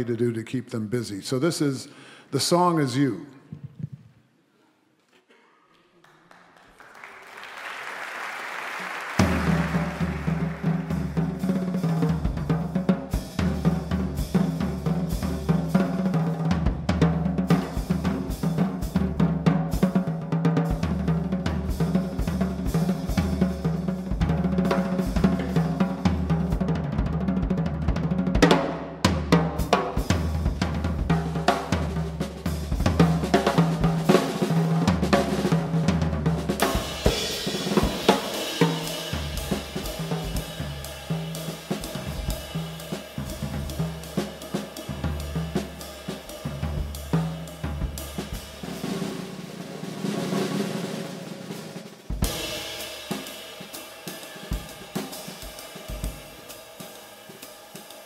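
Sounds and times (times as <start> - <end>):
snare drum hits: 9.2 - 11.2
cymbal and hi-hat wash: 36.6 - 48.8, 52.2 - 58.0.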